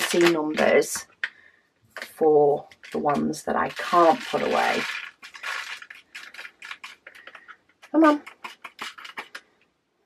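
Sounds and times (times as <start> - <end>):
plastic containers clicking and clattering: 0.0 - 9.7.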